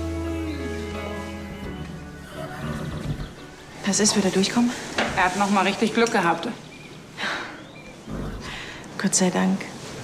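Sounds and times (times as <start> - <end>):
soft background music: 0.0 - 7.0
horse nickering: 2.2 - 3.5, 8.0 - 8.8.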